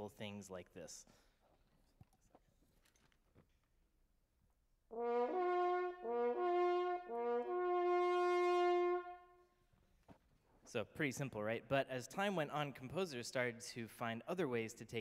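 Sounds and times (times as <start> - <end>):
french horn call: 4.9 - 9.5.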